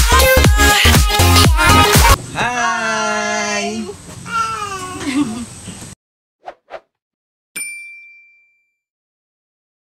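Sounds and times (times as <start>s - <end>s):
bell ding: 7.6s - 8.9s.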